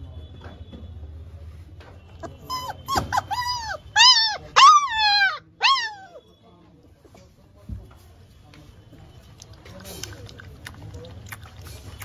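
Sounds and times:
puppy whining and yelping: 2.3s - 6.2s.

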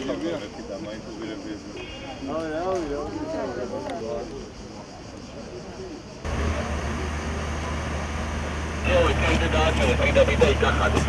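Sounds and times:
outdoor noise: 0.0s - 11.0s
low motor hum: 6.3s - 11.0s.

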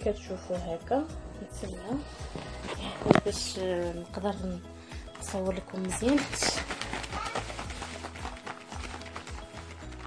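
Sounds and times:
background music: 0.0s - 10.0s
plastic bottle shaken rhythmically: 5.0s - 10.0s.

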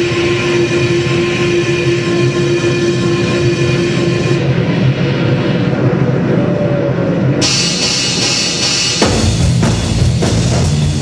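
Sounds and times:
steady held tone: 0.0s - 9.3s
rumbling electronic noise: 0.0s - 11.0s.

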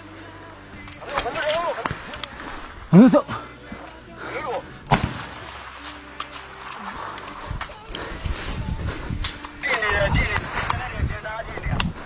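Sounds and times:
gunshots: 4.9s - 7.4s, 9.7s - 10.9s.

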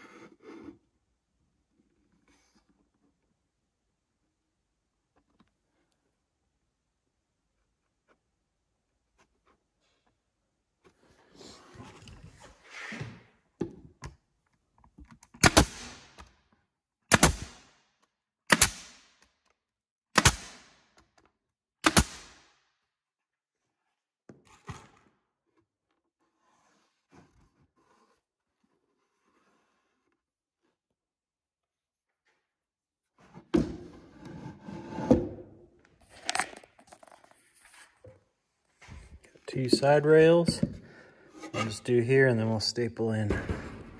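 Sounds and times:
pneumatic stapler firing into wood: 15.4s - 16.3s, 17.1s - 17.7s, 18.5s - 19.2s, 20.2s - 20.8s, 21.8s - 22.4s.

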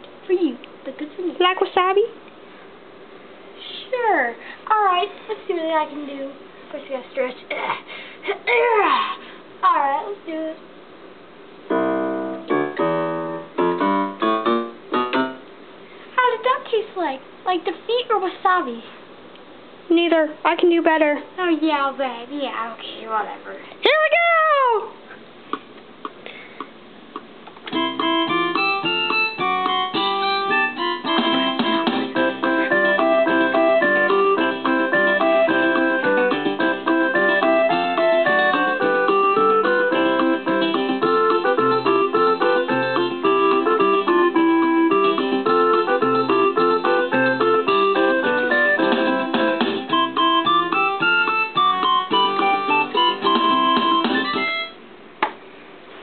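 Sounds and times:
electronic keyboard playing fast tune: 11.7s - 15.4s, 27.7s - 54.8s.

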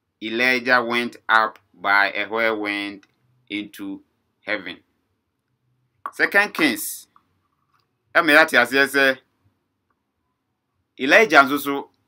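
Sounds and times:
man speaking: 0.2s - 4.9s, 6.1s - 7.2s, 8.2s - 9.3s, 11.0s - 12.0s.

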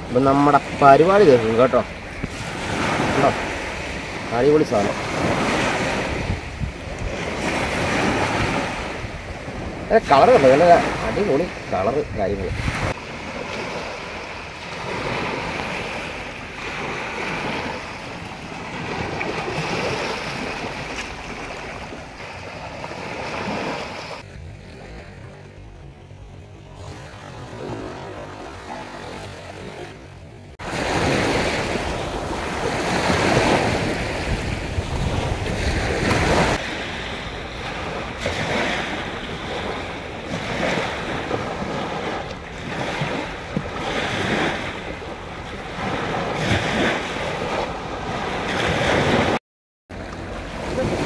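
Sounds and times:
sea waves washing over rocks: 0.0s - 25.4s, 26.8s - 51.0s
wind buffeting microphone: 0.0s - 51.0s.

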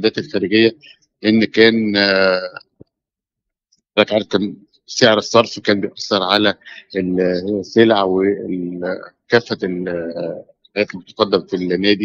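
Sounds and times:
man speaking: 0.0s - 2.9s, 3.9s - 12.0s.

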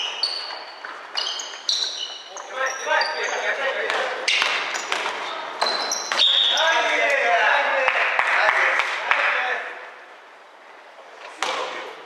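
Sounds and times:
players calling out: 1.2s - 9.9s
basketball bouncing on wooden floor: 3.9s - 6.5s.

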